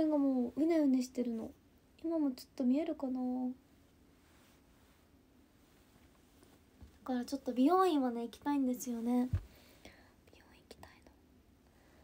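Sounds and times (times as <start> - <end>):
faint whisper: 9.8 - 11.3.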